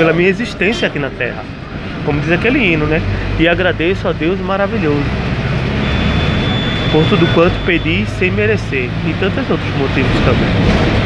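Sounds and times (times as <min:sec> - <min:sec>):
bus engine and road rumble: 0:00.0 - 0:11.0
thin high whine: 0:05.8 - 0:08.0.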